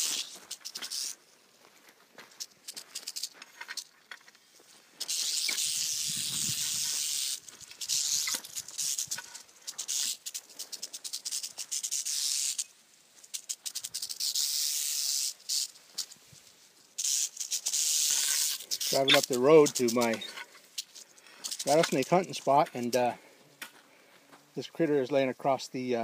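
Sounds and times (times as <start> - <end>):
rattlesnake rattling: 0.0 - 24.7.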